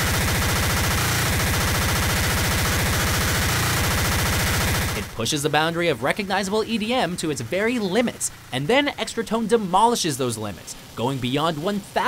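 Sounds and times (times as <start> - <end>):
distorted fast kick drum: 0.0 - 5.1.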